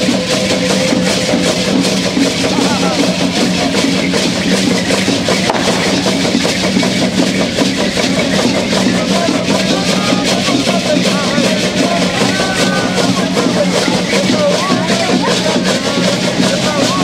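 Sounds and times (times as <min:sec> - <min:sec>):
drum beating: 0:00.0 - 0:17.0
faint voices: 0:00.0 - 0:17.0
gourd and leg rattles shaking: 0:00.0 - 0:17.0.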